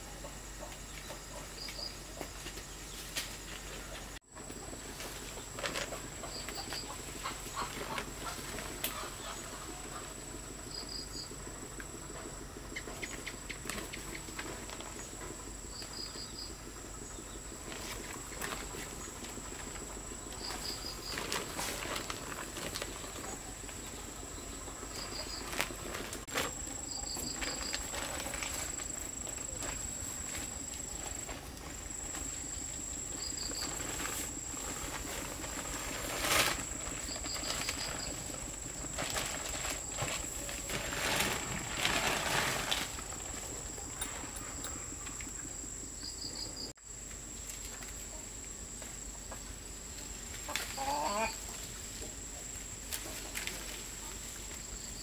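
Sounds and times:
rustling leaves and plastic bag: 1.8 - 11.3, 13.6 - 16.4, 17.4 - 43.8, 49.8 - 55.0
high-pitched insect drone: 14.8 - 46.7.

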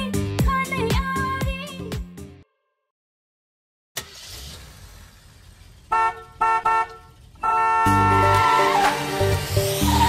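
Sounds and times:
bass and drums music: 0.0 - 2.4, 7.8 - 10.0
vehicle horn honking: 5.9 - 9.1.

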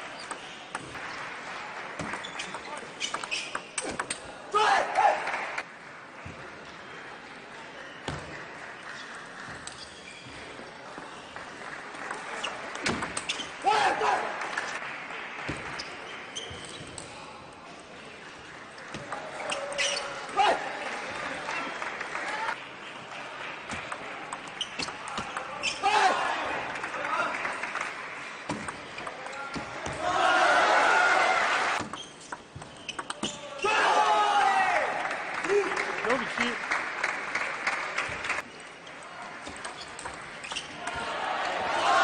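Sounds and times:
voices shouting and cheering: 29.3 - 31.8, 33.5 - 36.6, 40.8 - 42.0.

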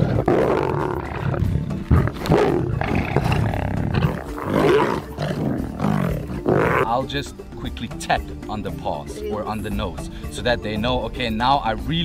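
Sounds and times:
lions growling and roaring: 0.0 - 7.0.

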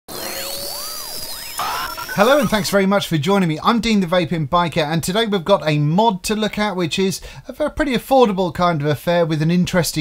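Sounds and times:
electronic tones sweeping in pitch: 0.1 - 2.8
glitchy electronic burst: 0.1 - 2.8
steady high tone: 0.1 - 2.8.

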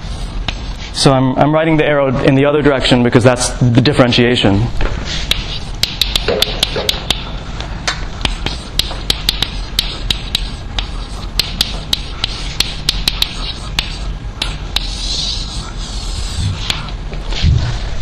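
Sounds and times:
chalk tapping and scratching on blackboard: 0.0 - 1.1, 5.1 - 7.3, 8.2 - 17.4
low room hum: 0.0 - 18.0.

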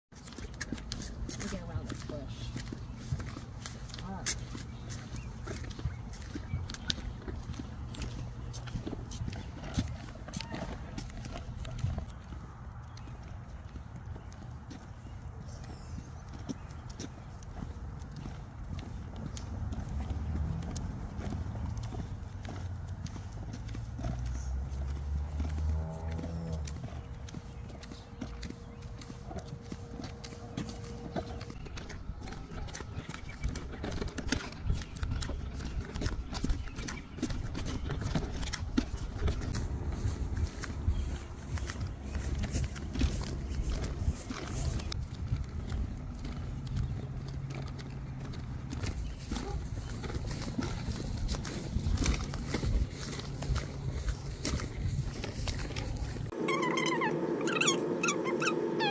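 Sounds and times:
light footsteps on concrete: 0.1 - 56.4
stroller wheels clicking and rattling: 0.1 - 58.9.

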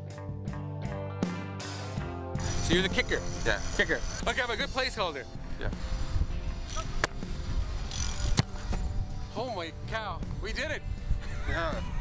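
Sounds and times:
background music: 0.0 - 12.0
wind rumbling on microphone: 5.4 - 12.0
football slapping into hands: 7.0 - 7.2.

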